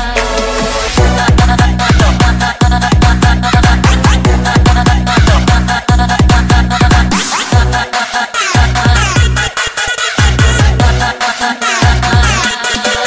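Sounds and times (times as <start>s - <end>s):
breakbeat dance music: 0.0s - 13.0s.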